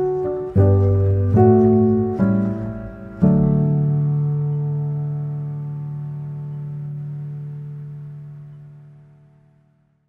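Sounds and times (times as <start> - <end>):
soft piano chord: 0.0 - 10.0.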